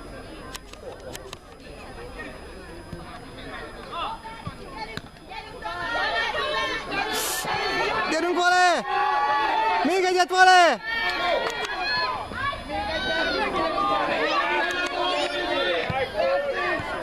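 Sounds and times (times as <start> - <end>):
people shouting and calling: 5.3 - 17.0.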